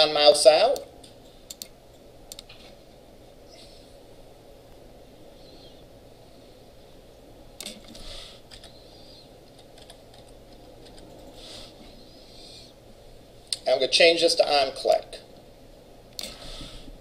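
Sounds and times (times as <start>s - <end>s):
low room hum: 0.0s - 17.0s
computer keyboard keystrokes: 1.5s - 1.7s, 9.5s - 11.2s.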